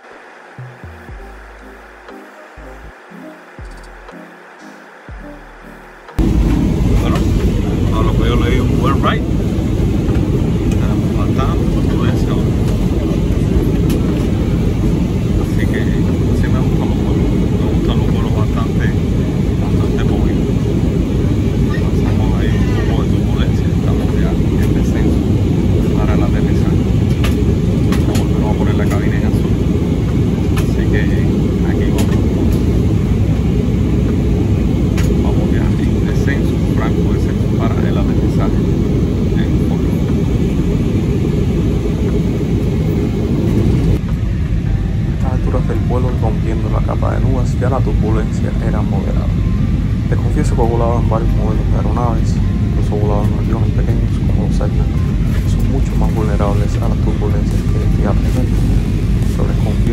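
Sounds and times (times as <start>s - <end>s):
jet airliner cabin rumble: 6.2s - 59.9s.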